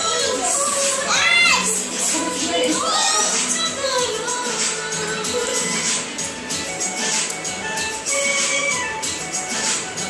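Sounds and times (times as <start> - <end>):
song playing in background: 0.0 - 10.0.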